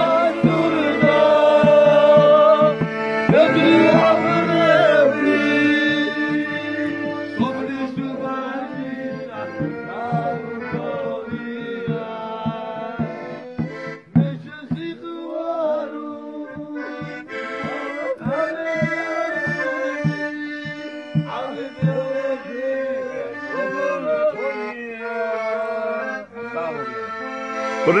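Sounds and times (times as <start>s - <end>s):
drum beat: 0.0s - 15.0s, 16.6s - 22.2s
accordion playing melody: 0.0s - 28.0s.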